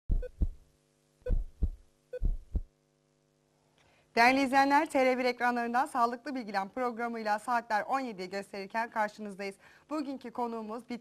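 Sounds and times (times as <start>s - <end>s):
heartbeat thumps: 0.1s - 0.6s, 1.3s - 2.7s.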